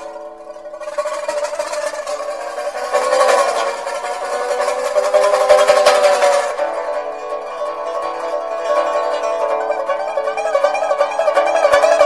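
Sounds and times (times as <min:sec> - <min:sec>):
plucked string instrument music: 0:00.0 - 0:12.0.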